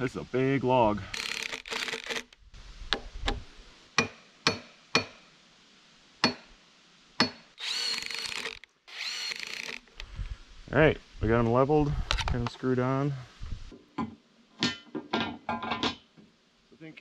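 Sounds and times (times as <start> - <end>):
cordless drill whining: 1.1 - 2.4, 7.6 - 10.1.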